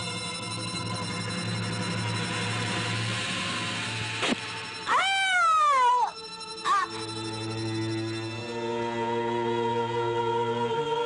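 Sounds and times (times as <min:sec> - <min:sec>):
film soundtrack music drone: 0:00.0 - 0:11.0
loud scream: 0:04.8 - 0:07.0.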